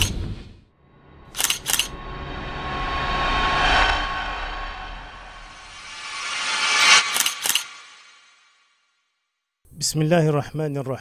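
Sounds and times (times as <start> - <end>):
whoosh: 0.0 - 9.0
camera shutter clicks: 1.4 - 1.9, 7.1 - 7.7.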